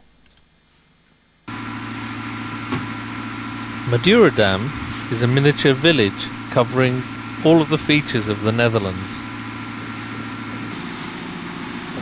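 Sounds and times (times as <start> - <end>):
low mechanical drone: 1.4 - 12.0.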